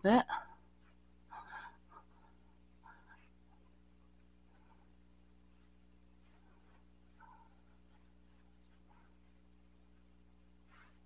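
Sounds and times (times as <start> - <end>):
steady low hum: 0.0 - 11.0
fingertips rubbing skin: 0.7 - 11.0.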